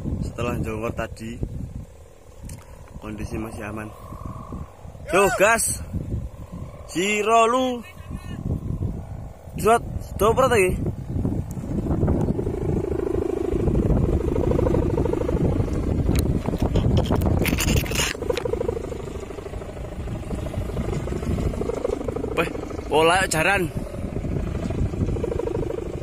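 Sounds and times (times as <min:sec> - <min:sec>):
wind rumbling on microphone: 0:00.0 - 0:26.0
person shouting: 0:05.0 - 0:05.6
kite sail flapping: 0:11.1 - 0:26.0.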